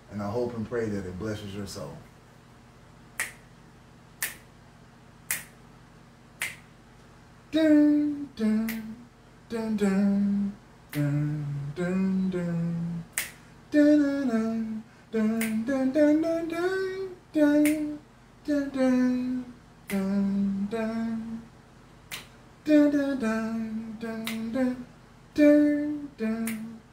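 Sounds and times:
finger snaps: 3.1s - 3.5s, 4.2s - 4.5s, 5.2s - 5.6s, 6.4s - 7.1s, 8.5s - 9.0s, 10.9s - 11.4s, 13.1s - 13.5s, 15.2s - 15.7s, 17.5s - 18.0s, 19.8s - 20.2s, 22.0s - 22.4s, 24.1s - 24.6s, 25.6s - 26.8s
man singing wordlessly: 7.5s - 21.5s, 22.6s - 26.9s.

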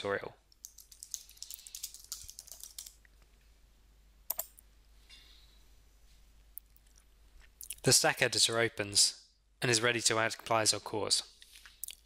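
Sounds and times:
sharp keyboard click: 0.5s - 3.0s, 4.3s - 4.6s
typing on computer keyboard: 0.5s - 3.0s, 4.3s - 4.6s.

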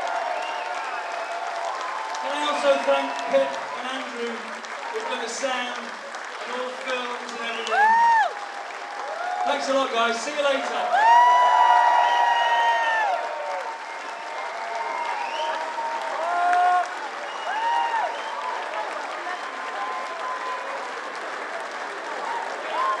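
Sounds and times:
people whooping: 0.0s - 5.6s, 7.6s - 9.8s, 10.5s - 21.2s, 22.0s - 23.0s
audience applauding: 0.0s - 23.0s.

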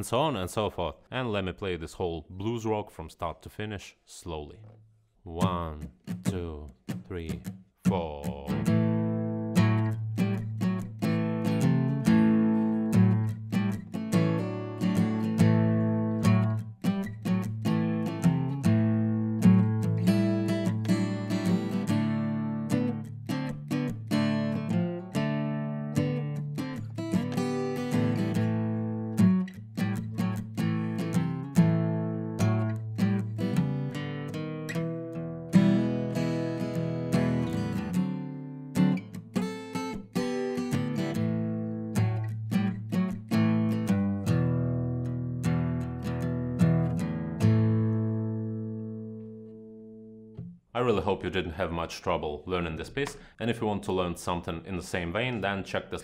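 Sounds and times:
acoustic guitar blues riff: 4.3s - 54.1s.

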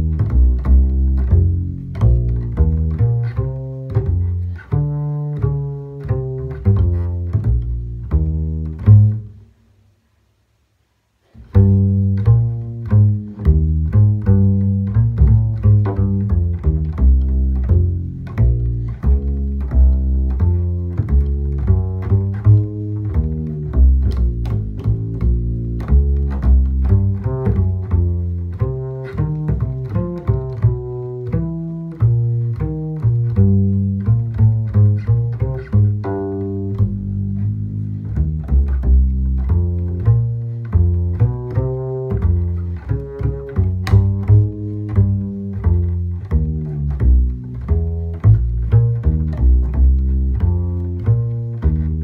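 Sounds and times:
plucked double bass walking line: 0.0s - 52.0s.

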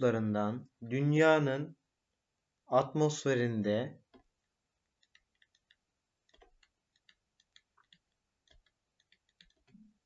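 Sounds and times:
stylus tapping on pen tablet: 4.1s - 10.0s.

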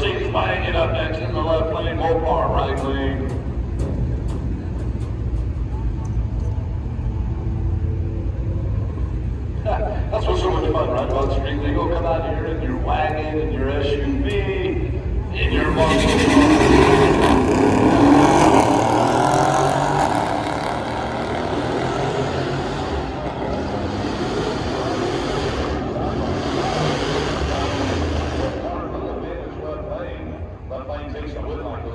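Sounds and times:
car engines launching at full throttle: 15.4s - 29.6s.

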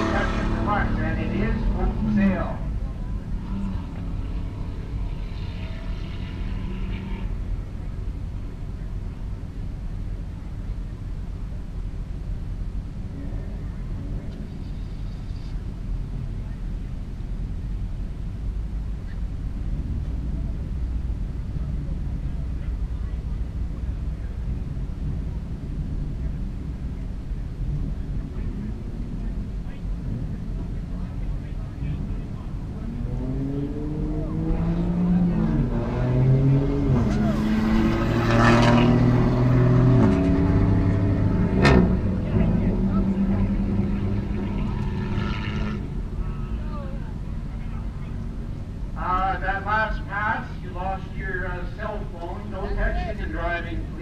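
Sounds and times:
drag racer engine accelerating: 0.0s - 8.0s, 19.0s - 54.0s
engines idling: 0.0s - 54.0s.

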